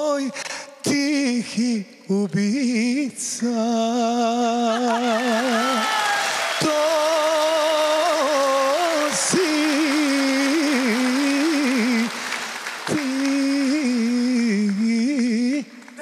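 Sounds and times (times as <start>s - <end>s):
man singing unaccompanied: 0.0s - 5.8s, 6.6s - 12.2s, 12.9s - 16.0s.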